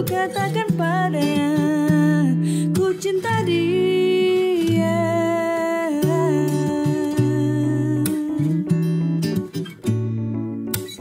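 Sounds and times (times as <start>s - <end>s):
woman singing wordless notes: 0.0s - 8.8s
fingerstyle acoustic guitar: 0.0s - 11.0s.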